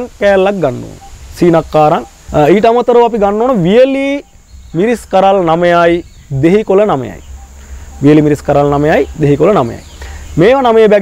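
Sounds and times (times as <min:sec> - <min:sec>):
man speaking: 0:00.0 - 0:07.3, 0:07.9 - 0:11.0
high whine of insects: 0:00.0 - 0:11.0.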